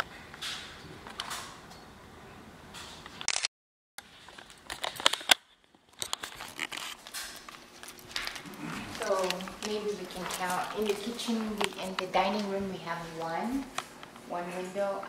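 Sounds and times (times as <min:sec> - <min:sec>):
handling clicks and rustling: 0:04.3 - 0:14.2.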